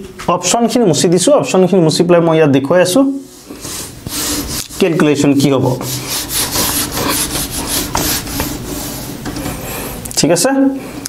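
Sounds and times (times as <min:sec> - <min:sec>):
marker rubbing on whiteboard: 0:03.4 - 0:09.2.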